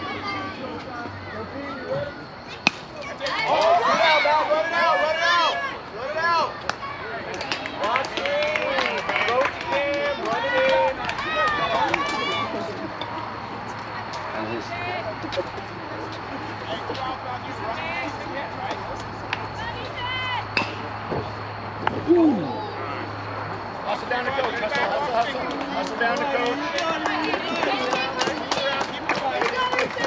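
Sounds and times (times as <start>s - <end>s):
high voices yelling and cheering: 0.0s - 15.8s, 22.0s - 30.0s
bat hitting baseball: 2.6s - 3.6s.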